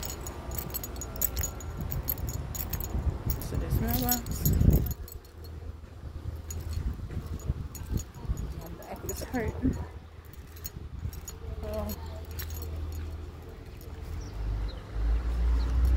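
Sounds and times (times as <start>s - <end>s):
keys jangling: 0.0s - 5.7s, 6.3s - 14.3s, 15.6s - 15.9s.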